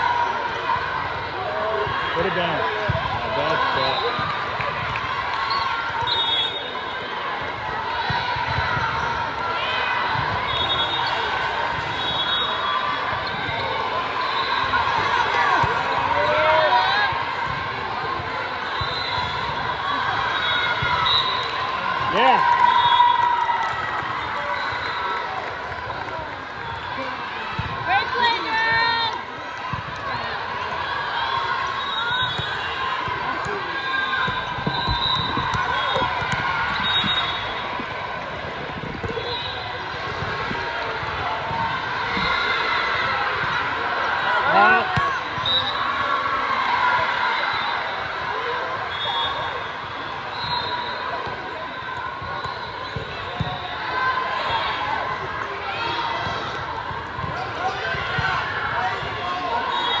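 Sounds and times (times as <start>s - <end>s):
many voices chattering: 0.0s - 60.0s.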